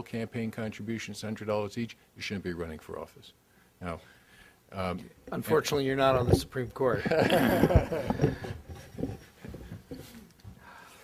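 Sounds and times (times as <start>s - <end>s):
people laughing softly: 6.9s - 10.0s.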